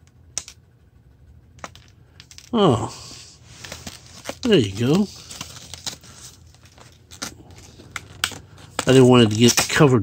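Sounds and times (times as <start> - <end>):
plastic packaging clicks and rustles: 3.5 - 10.0.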